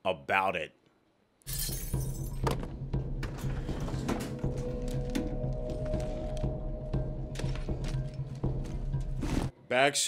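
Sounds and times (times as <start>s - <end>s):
low music drone: 3.3s - 9.3s.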